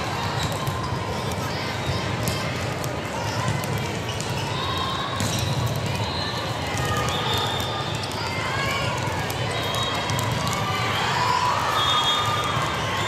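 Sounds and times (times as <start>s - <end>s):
balls thudding and bouncing: 0.0s - 10.8s.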